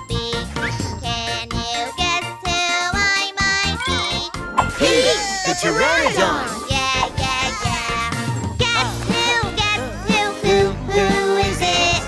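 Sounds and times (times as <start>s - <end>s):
person singing: 4.6s - 8.0s.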